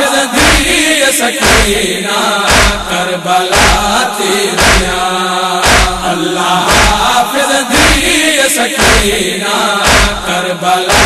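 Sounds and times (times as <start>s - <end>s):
male voices chanting a lament: 0.0s - 11.0s
heavy beat: 1.4s - 1.8s, 2.5s - 2.9s, 3.5s - 4.0s, 4.6s - 5.0s, 5.6s - 7.1s, 8.8s - 9.2s, 9.8s - 10.3s.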